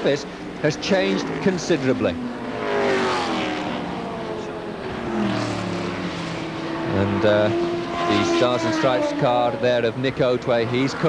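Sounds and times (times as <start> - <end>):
racing car engines passing by: 0.0 - 11.0
lower car engine note: 1.4 - 9.8.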